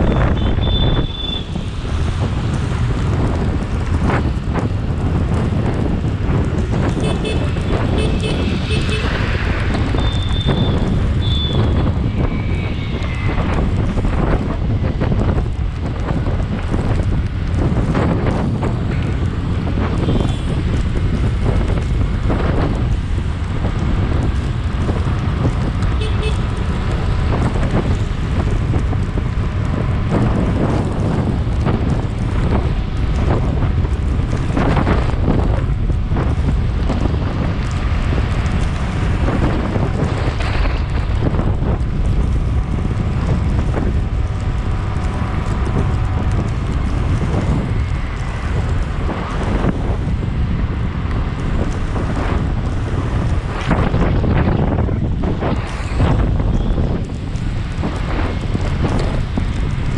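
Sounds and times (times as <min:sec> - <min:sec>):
city traffic noise: 0:00.0 - 0:59.9
wind buffeting microphone: 0:00.0 - 0:59.9
vehicle horns tooting: 0:00.3 - 0:01.5, 0:07.0 - 0:09.2, 0:10.0 - 0:11.8, 0:26.0 - 0:26.5.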